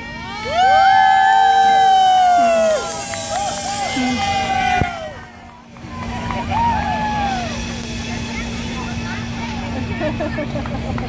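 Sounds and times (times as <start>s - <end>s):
constant background noise: 0.0s - 11.0s
distant crowd chattering: 0.0s - 11.0s.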